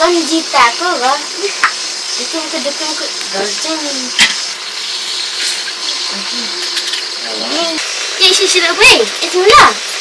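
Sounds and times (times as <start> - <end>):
oil sizzling: 0.0 - 10.0.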